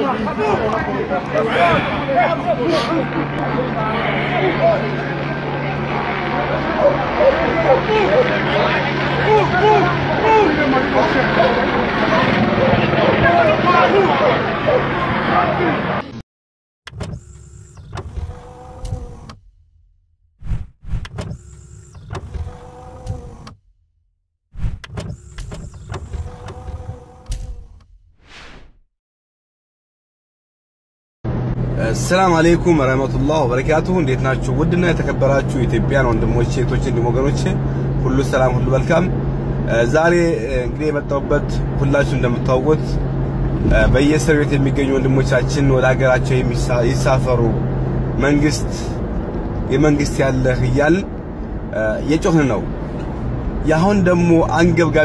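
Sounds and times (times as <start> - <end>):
crowd calling out and talking: 0.0 - 16.2
mechanical whirring hum: 16.9 - 19.8, 20.4 - 23.7, 24.6 - 28.0
mechanical clicks: 24.6 - 28.0
steady low hum: 31.8 - 52.0.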